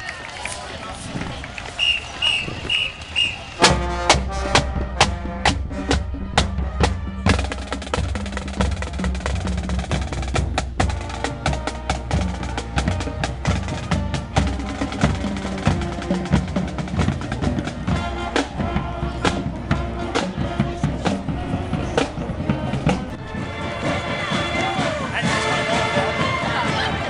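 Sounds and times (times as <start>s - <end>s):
short whistle blasts: 1.8s - 3.6s
snare drums: 1.8s - 27.0s
bass drums: 3.6s - 27.0s.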